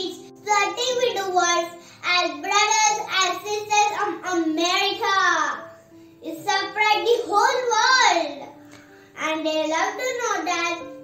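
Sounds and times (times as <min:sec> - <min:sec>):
girl reciting a speech: 0:00.0 - 0:11.0.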